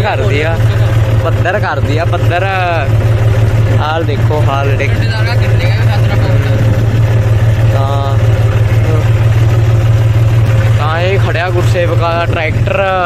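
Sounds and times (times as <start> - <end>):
tractor diesel engine: 0.0 - 13.0.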